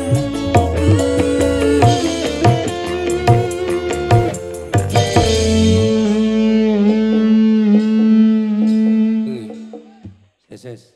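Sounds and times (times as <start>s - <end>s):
electric guitar phrase: 0.0s - 10.3s
live band playing: 0.0s - 10.3s.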